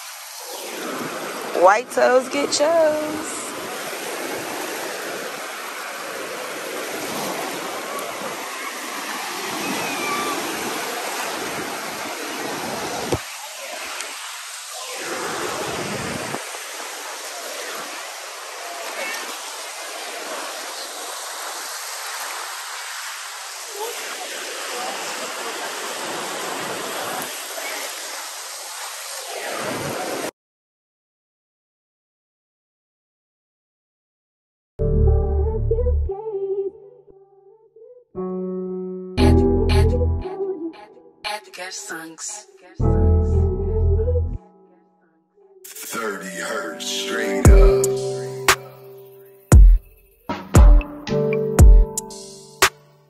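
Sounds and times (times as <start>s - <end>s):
surf washing over sand: 0.0s - 30.3s
feet wading through water: 3.0s - 30.3s.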